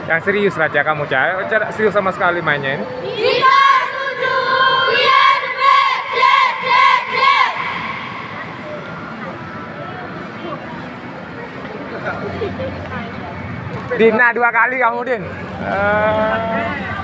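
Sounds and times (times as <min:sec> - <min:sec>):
crowd noise: 0:00.0 - 0:17.0
young voices shouting a chant: 0:02.9 - 0:09.1.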